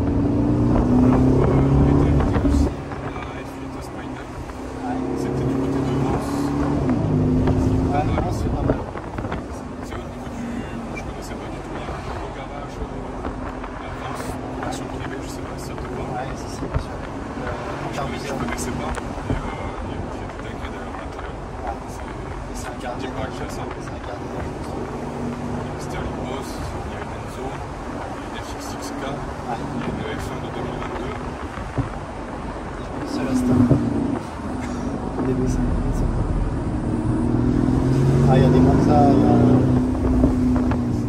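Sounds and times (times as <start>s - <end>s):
wind noise: 0.0s - 28.4s, 29.0s - 41.0s
car engine running: 0.0s - 41.0s
road noise: 0.0s - 41.0s.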